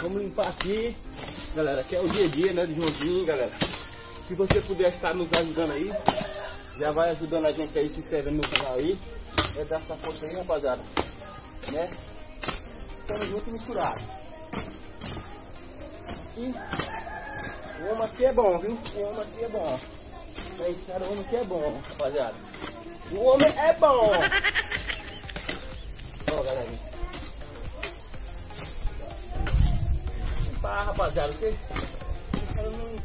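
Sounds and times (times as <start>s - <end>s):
high-pitched insect chirring: 0.0s - 33.0s
hoe chopping into soil: 0.0s - 33.0s.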